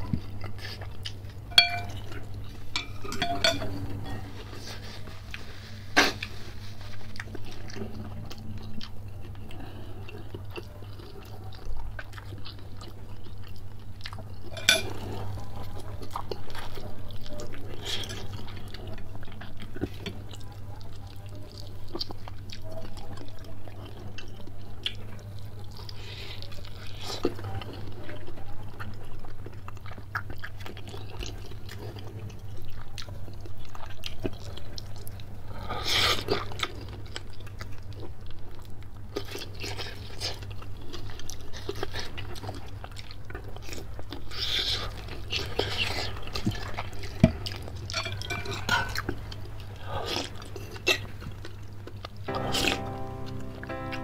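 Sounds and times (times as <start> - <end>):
chewing and crunching: 0.0 - 52.4.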